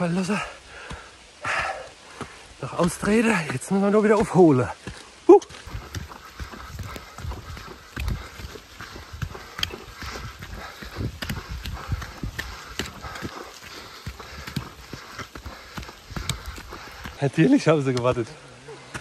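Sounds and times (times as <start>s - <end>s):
hurried footsteps on dirt trail: 0.0s - 19.0s.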